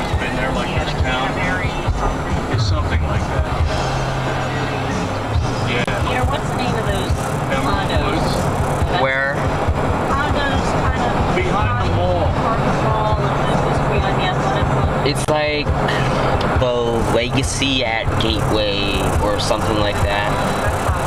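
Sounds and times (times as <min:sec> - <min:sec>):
music playing: 0:00.0 - 0:21.0
road and engine noise: 0:00.0 - 0:21.0
voices: 0:00.0 - 0:21.0.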